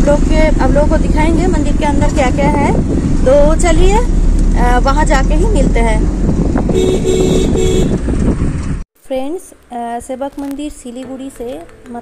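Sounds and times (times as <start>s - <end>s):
vehicle horn honks: 6.7s - 8.0s.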